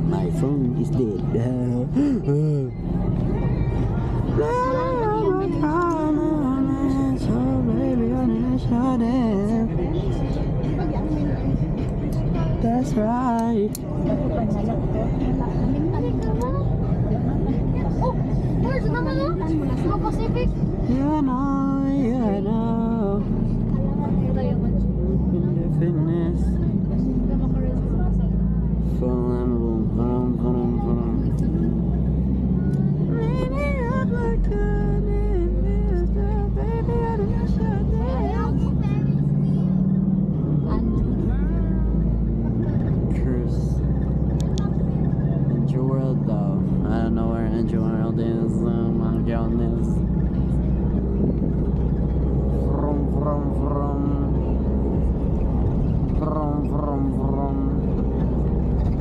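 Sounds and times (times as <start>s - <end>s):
song with singing: 0.0s - 10.8s, 28.8s - 39.9s
vehicle road and engine rumble: 0.0s - 59.0s.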